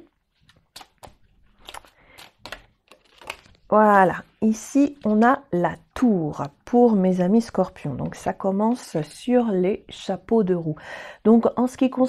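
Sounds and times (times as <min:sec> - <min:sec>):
cards being shuffled by hand: 0:00.3 - 0:03.7.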